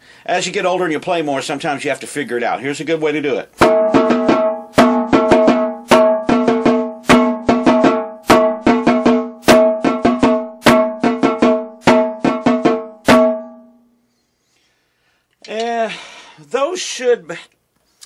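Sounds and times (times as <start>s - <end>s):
snare drum rudiment strokes: 3.6s - 13.7s
ringing pitched drum tone: 3.6s - 13.9s.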